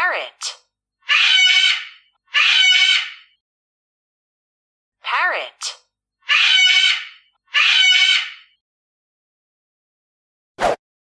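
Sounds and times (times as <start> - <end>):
parrot squawking: 1.0 - 3.3, 6.2 - 8.6.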